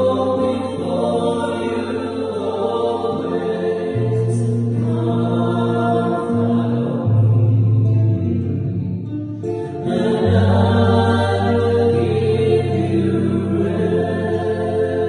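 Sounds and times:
small choir singing a hymn: 0.0s - 8.8s, 9.5s - 15.0s
acoustic guitar: 0.0s - 15.0s.

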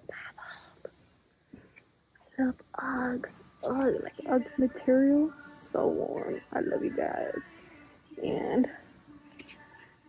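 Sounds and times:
woman whispering: 0.0s - 0.9s, 8.2s - 8.8s.

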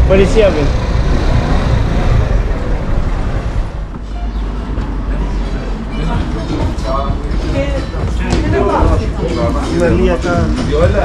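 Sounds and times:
town traffic rumble: 0.0s - 11.0s.

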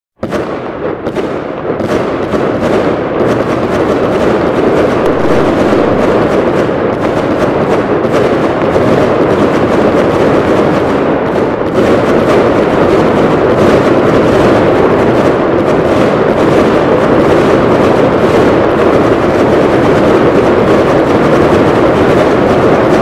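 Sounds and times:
fireworks bursting and crackling: 0.2s - 23.0s.

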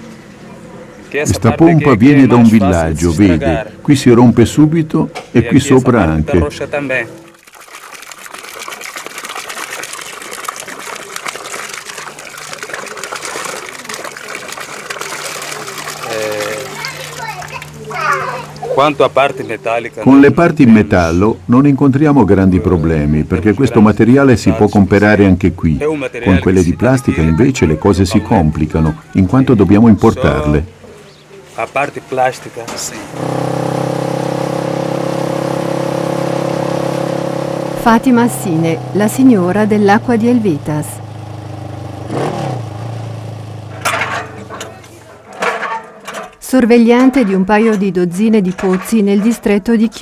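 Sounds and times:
water splashing into metal tub: 7.1s - 19.0s, 43.4s - 49.6s
voices: 10.9s - 33.2s, 37.8s - 41.0s, 43.7s - 45.7s, 46.4s - 50.0s
small motorcycle engine running: 33.1s - 43.8s.

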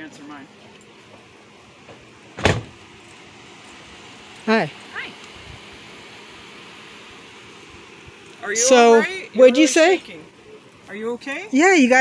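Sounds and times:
outdoor background noise: 0.0s - 12.0s
short thump: 1.9s - 2.8s.

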